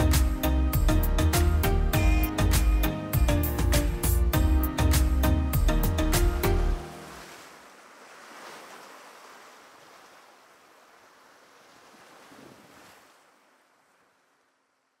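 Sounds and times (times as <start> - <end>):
sea surf washing over rocks: 6.8 - 14.2.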